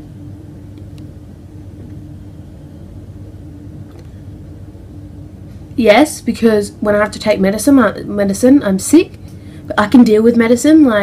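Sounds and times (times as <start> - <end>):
faint even hum: 0.0 - 11.0
low background rumble: 0.0 - 11.0.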